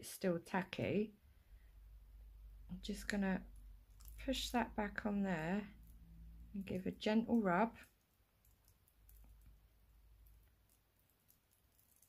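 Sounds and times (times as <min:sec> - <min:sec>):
light clicks of foil rubbing: 0:10.2 - 0:12.0.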